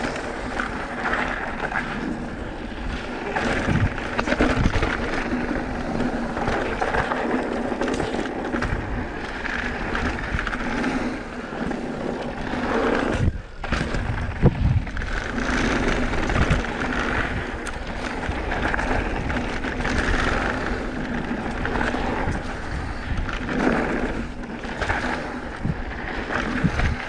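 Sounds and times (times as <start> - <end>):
bike rattling: 0.0 - 27.0
bike tyres crunching on dirt: 0.0 - 27.0
rushing wind noise: 0.0 - 27.0.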